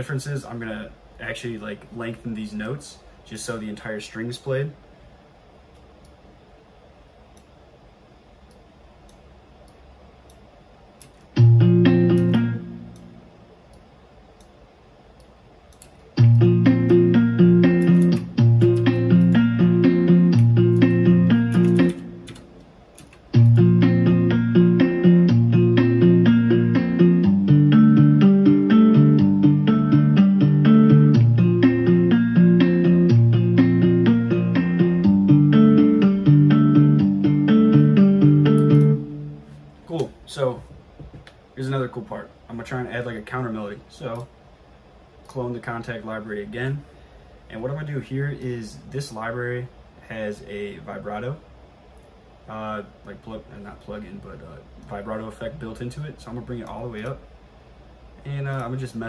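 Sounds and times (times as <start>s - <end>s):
plucked guitar chords with reverb: 11.4s - 13.3s, 16.2s - 22.5s, 23.3s - 39.6s.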